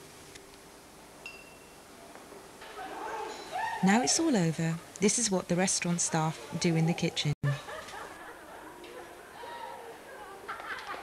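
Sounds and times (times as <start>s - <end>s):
high ringing tone: 1.2s - 1.9s
voices of people: 2.6s - 11.0s.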